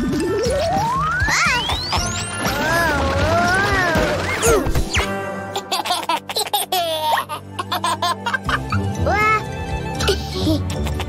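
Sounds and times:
children's background music: 0:00.0 - 0:11.0
cartoon baby giggling: 0:05.6 - 0:09.4, 0:10.0 - 0:11.0.

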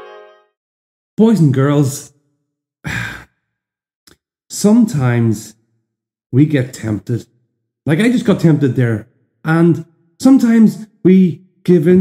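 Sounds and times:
man sighing: 0:02.8 - 0:03.3.

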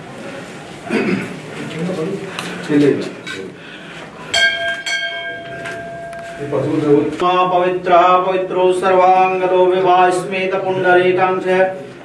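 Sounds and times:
metal bell ringing: 0:04.3 - 0:07.1.

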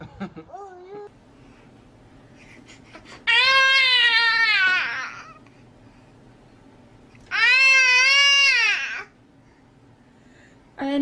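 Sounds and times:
baby crying: 0:03.1 - 0:05.4, 0:07.3 - 0:09.2.

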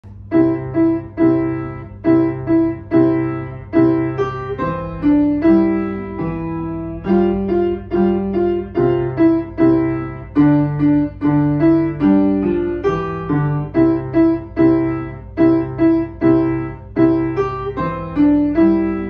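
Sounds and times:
piano melody: 0:00.0 - 0:19.0.

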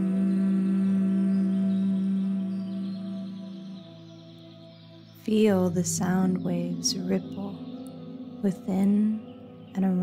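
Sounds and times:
person humming a long note: 0:00.0 - 0:03.9.

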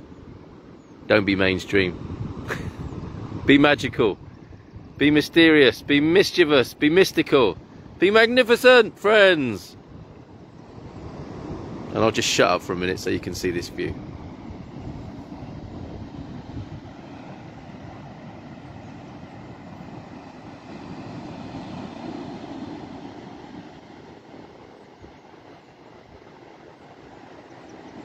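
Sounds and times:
surf breaking on a beach: 0:00.0 - 0:28.0
wind on the microphone: 0:01.8 - 0:06.0, 0:07.4 - 0:08.0, 0:09.8 - 0:12.1, 0:13.2 - 0:28.0.

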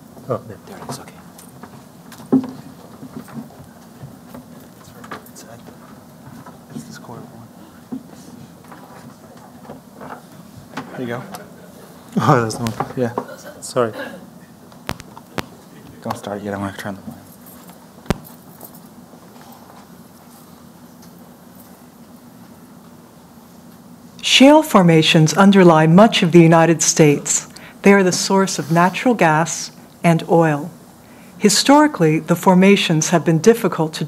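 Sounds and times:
faint room hum: 0:00.0 - 0:34.0
low electrical buzz: 0:00.0 - 0:34.0
audio cable clicks and knocks: 0:14.8 - 0:15.5.

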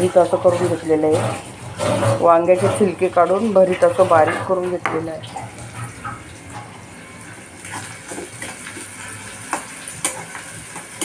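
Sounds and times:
food sizzling in a pan: 0:04.6 - 0:11.0.

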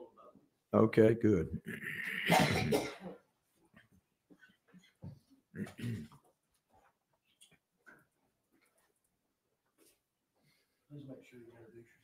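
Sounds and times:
person coughing: 0:01.8 - 0:03.2, 0:05.6 - 0:06.1.

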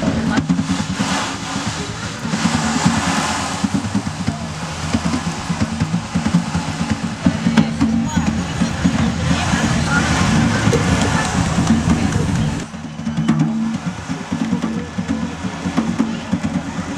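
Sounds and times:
music: 0:00.0 - 0:16.9.

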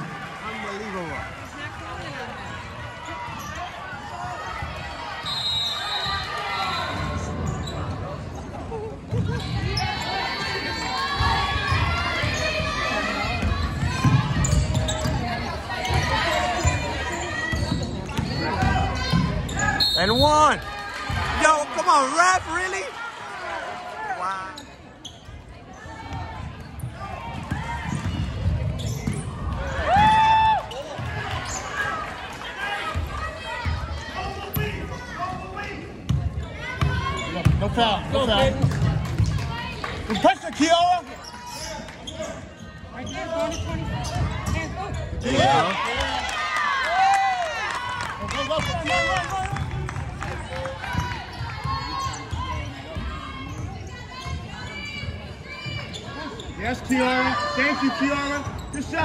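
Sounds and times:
loud shout: 0:29.7 - 0:30.8, 0:45.2 - 0:49.6.

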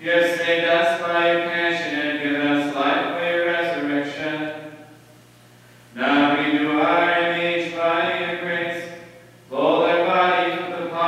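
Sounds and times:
liturgical chant into microphone: 0:06.0 - 0:11.0.

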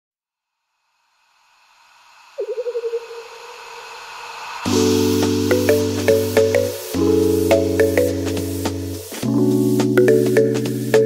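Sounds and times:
synthesized hiss: 0:00.6 - 0:11.0.

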